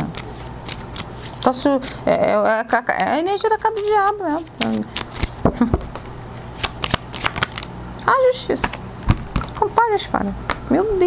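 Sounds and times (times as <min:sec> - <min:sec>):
cards flicking and slapping: 0:00.0 - 0:01.5, 0:03.7 - 0:05.5, 0:06.5 - 0:07.7.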